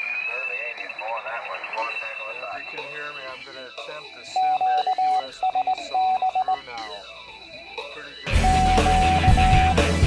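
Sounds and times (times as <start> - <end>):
thin high whine: 0.0 - 4.4
morse code beeps: 0.0 - 10.0
faint radio voice chatter: 0.3 - 8.2.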